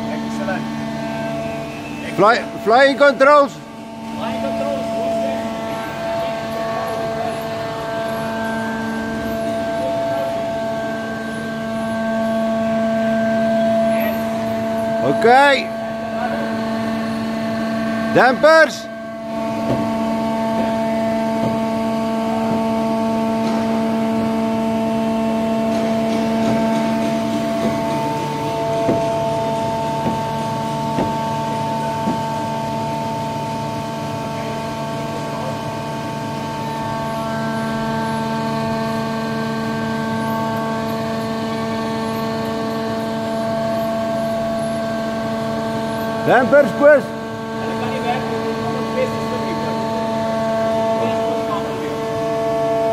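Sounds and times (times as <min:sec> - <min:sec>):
steady machine hum: 0:00.0 - 0:52.9.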